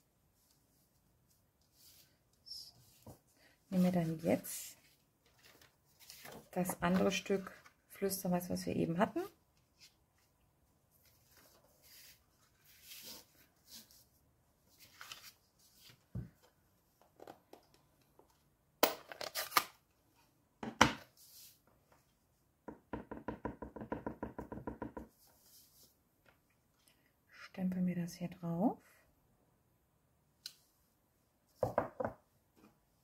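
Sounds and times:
paper rustling and sliding: 0:04.9 - 0:07.7, 0:11.0 - 0:14.0, 0:14.7 - 0:16.1.

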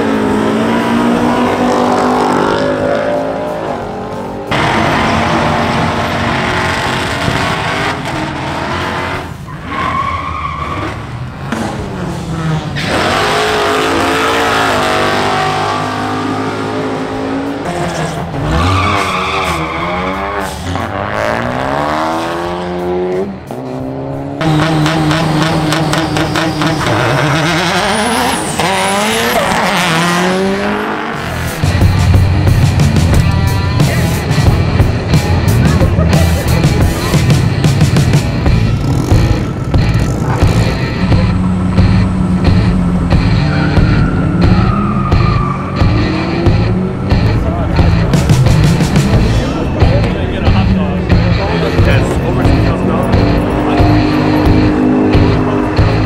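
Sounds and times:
cars accelerating hard: 0:00.0 - 0:56.0.

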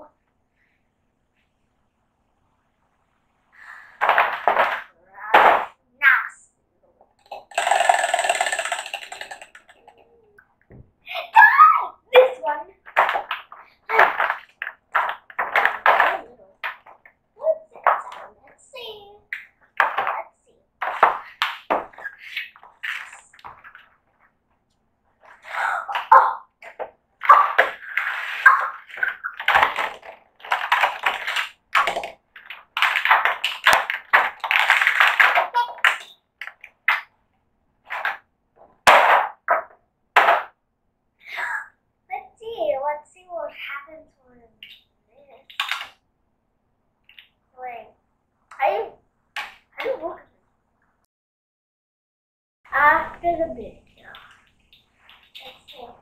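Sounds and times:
child talking: 0:00.0 - 0:00.2, 0:04.9 - 0:07.4, 0:08.8 - 0:10.4, 0:11.1 - 0:12.9, 0:16.0 - 0:16.6, 0:17.4 - 0:19.4, 0:20.0 - 0:20.7, 0:35.5 - 0:35.8, 0:41.2 - 0:45.5, 0:47.6 - 0:49.0, 0:49.8 - 0:50.3, 0:52.7 - 0:54.3, 0:55.4 - 0:56.0.

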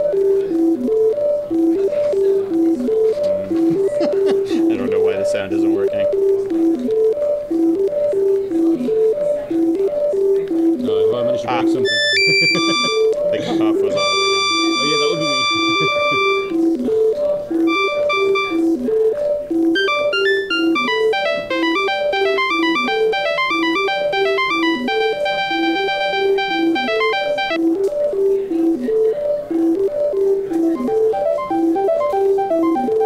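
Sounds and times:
higher synth notes: 0:11.8 - 0:13.2, 0:13.9 - 0:16.6, 0:17.7 - 0:18.7, 0:19.8 - 0:27.6, 0:30.7 - 0:33.0
repeating low synth riff: 0:14.0 - 0:16.7, 0:17.7 - 0:18.7, 0:19.7 - 0:27.7, 0:30.7 - 0:33.0.

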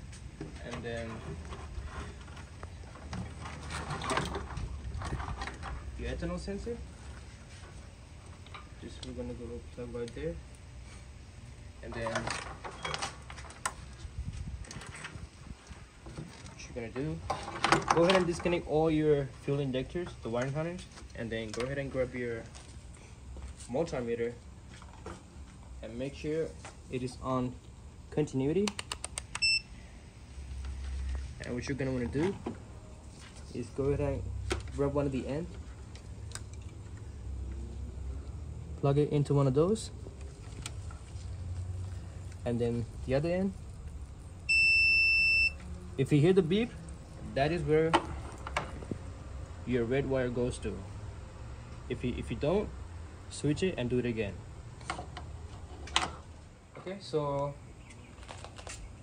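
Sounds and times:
connectors clicking: 0:28.6 - 0:29.5
short high beep: 0:29.4 - 0:29.7, 0:44.5 - 0:45.6.

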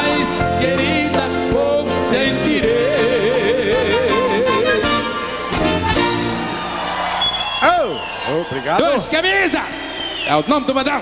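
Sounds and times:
man singing long vibrato note: 0:00.0 - 0:05.4
live band playing: 0:00.0 - 0:07.4.

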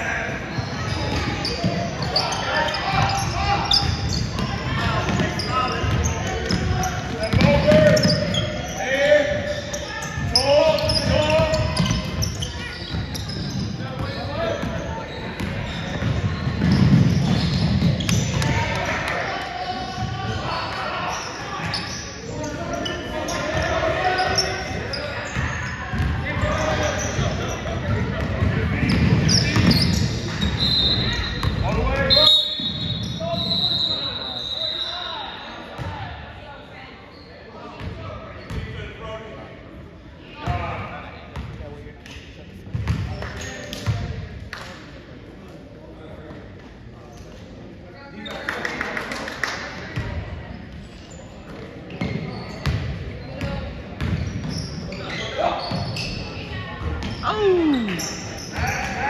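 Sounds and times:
players and spectators shouting: 0:57.2 - 0:59.0.

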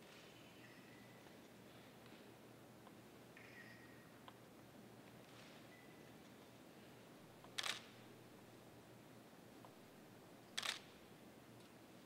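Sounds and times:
camera shutter click: 0:07.6 - 0:07.9, 0:10.6 - 0:10.9.

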